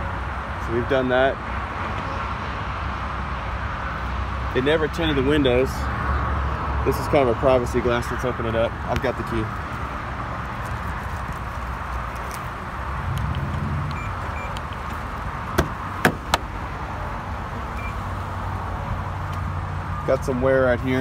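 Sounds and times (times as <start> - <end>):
steady low rumble: 10.5 - 17.9
car door lock clicks: 15.5 - 16.5.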